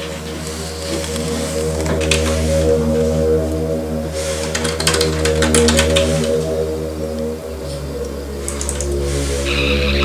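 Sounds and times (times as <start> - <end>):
background music with low drone: 0.0 - 10.0.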